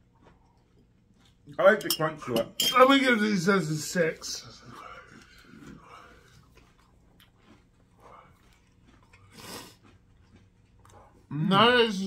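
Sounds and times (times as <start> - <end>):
chewing crunchy cereal: 0.0 - 1.8, 4.1 - 12.0.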